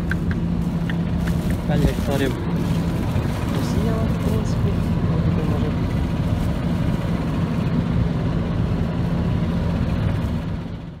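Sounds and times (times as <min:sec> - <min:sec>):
tractor engine and blower hum: 0:00.0 - 0:11.0.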